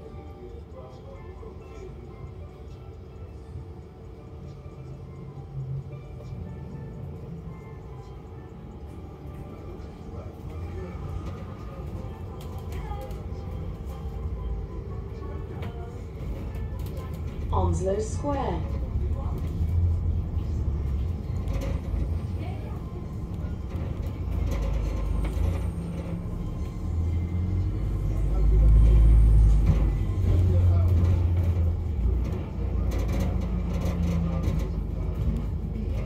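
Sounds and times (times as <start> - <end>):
bus engine and road rumble: 0.0 - 36.0.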